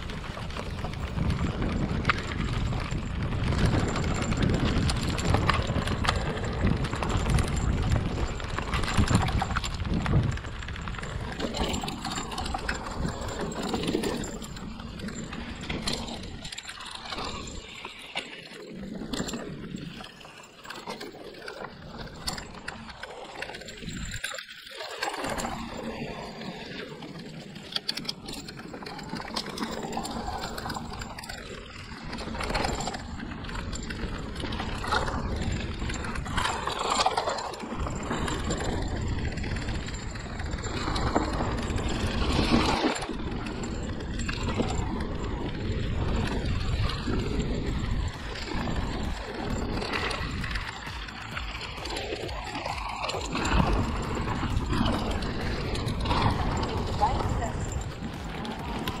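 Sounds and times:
bike knocks and rattles: 0.0 - 17.8, 27.8 - 59.0
bike tyres over dry leaves: 0.0 - 23.8, 24.9 - 59.0
low uneven rumble: 44.9 - 59.0.

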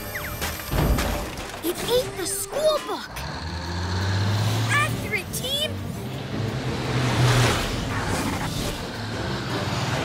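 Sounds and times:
truck engine hum: 0.0 - 10.0.

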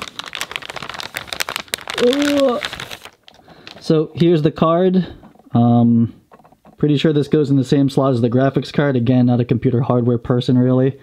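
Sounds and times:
plastic bag crinkling: 0.0 - 5.6.

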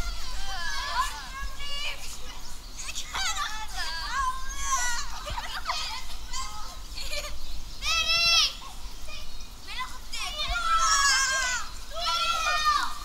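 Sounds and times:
children shouting and shrieking: 0.0 - 13.0.

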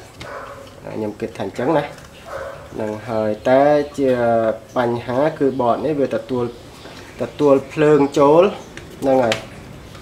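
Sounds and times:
man talking: 0.8 - 2.0, 2.7 - 6.6, 7.2 - 9.6.

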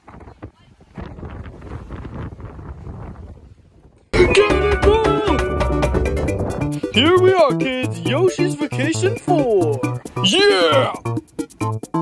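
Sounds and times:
wind buffeting microphone: 0.0 - 4.2, 5.6 - 7.0.

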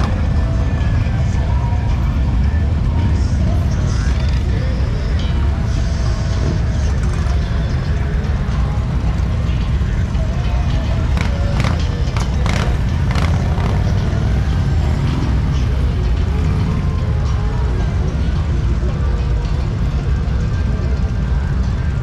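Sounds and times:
motorcycle engines rumbling: 0.0 - 22.0
music: 0.0 - 22.0
people talking: 0.0 - 22.0
voices: 0.0 - 22.0.

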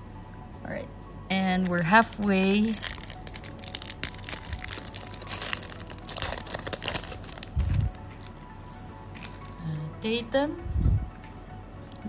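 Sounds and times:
foil pack crinkling and tearing: 1.6 - 8.0.

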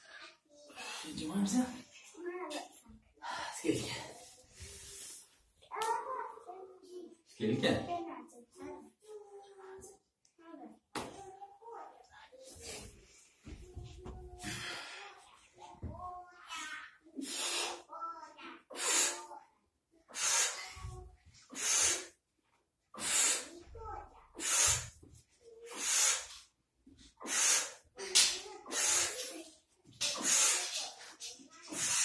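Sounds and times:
forceful hissy exhale: 17.2 - 17.9, 20.1 - 20.8, 25.7 - 26.4, 27.2 - 27.9.

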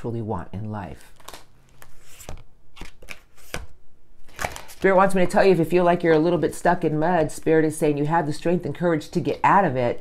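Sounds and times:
cards being shuffled: 1.1 - 6.4
sharp card snaps: 4.3 - 4.8.

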